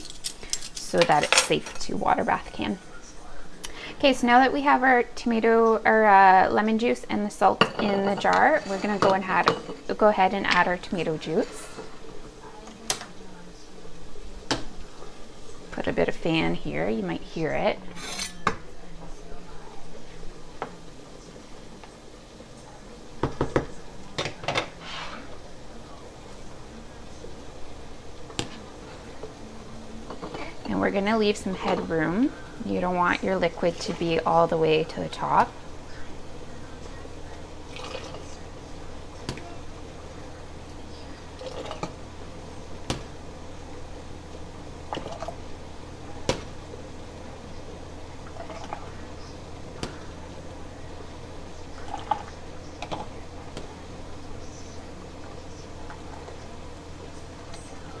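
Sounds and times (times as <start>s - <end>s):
kitchen fan humming: 0.0s - 58.0s.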